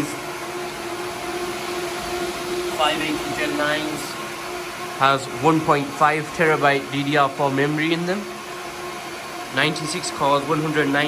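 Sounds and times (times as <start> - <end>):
constant low whine: 0.0 - 11.0
server cooling fans whirring: 0.0 - 11.0.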